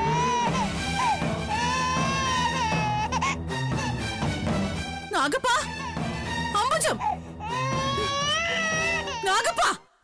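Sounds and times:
toddler crying: 0:00.0 - 0:04.0, 0:06.8 - 0:09.8.

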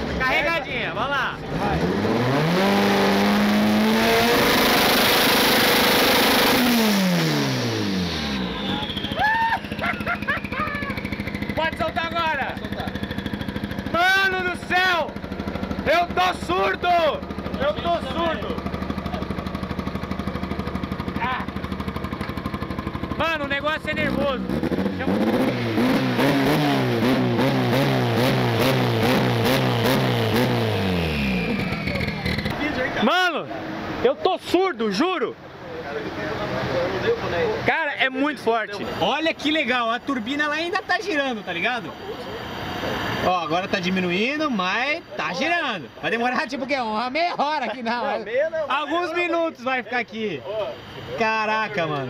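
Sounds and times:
engine revving then idling: 0:01.4 - 0:34.0
turbo whine winding down: 0:01.6 - 0:18.6, 0:23.2 - 0:33.3, 0:38.5 - 0:47.1
people whooping and laughing: 0:08.6 - 0:11.1.

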